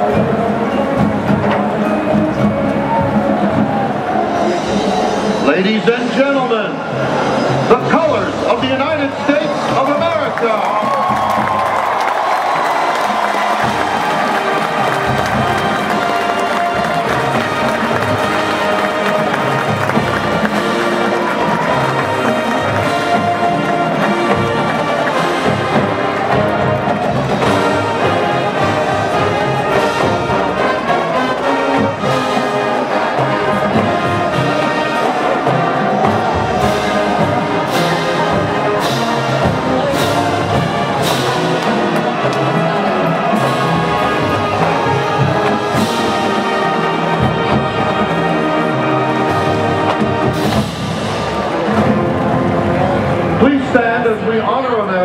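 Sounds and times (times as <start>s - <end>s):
drums and percussion: 0.0s - 55.0s
marching band brass: 0.0s - 55.0s.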